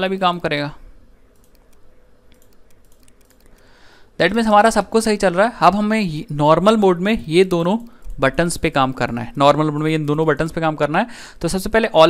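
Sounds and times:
quick computer clicks: 1.3s - 3.8s.

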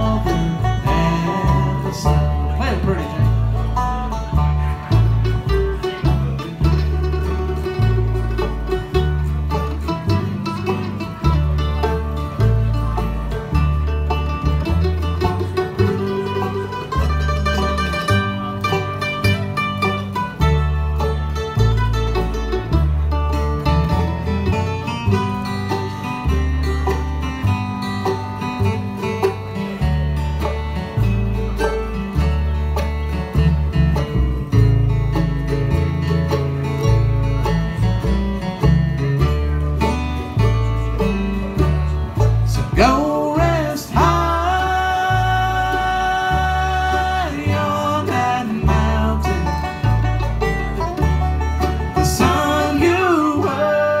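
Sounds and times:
bluegrass band playing: 0.0s - 54.0s
upright bass notes: 0.0s - 54.0s.

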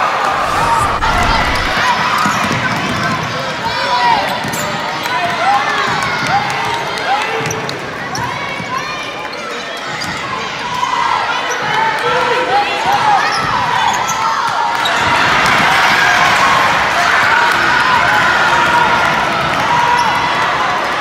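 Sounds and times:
indistinct voices of crowd: 0.0s - 2.6s.

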